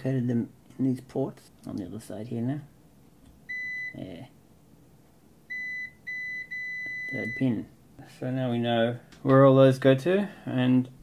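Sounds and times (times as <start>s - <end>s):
multimeter continuity beep: 3.5s - 4.0s, 5.5s - 7.6s.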